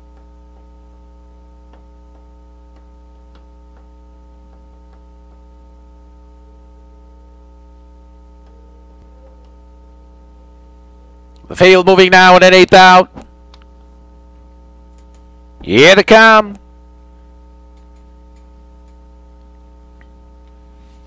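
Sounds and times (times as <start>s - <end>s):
electrical hum: 0.0s - 21.0s
faint irregular ticks: 1.6s - 5.4s, 17.7s - 20.9s.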